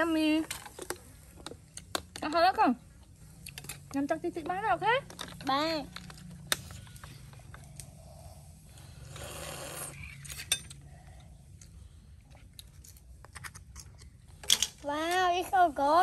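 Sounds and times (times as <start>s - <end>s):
metal spoons scraping shells: 10.0s - 10.8s.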